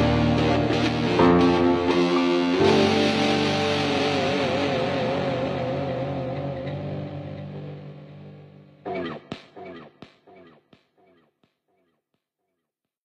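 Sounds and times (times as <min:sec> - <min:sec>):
held synth chord with wavering tone: 0:00.0 - 0:08.7.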